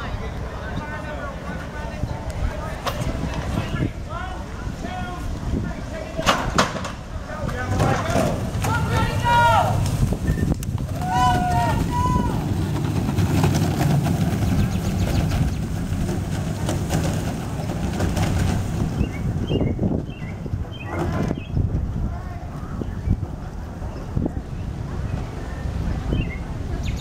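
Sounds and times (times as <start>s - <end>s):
cars rolling on asphalt: 0.0s - 27.0s
spectators shouting: 7.8s - 10.0s, 10.8s - 12.8s.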